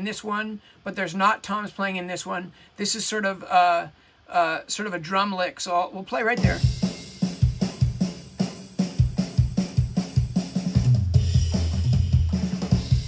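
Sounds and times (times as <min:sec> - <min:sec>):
drum kit playing: 0:06.4 - 0:13.0.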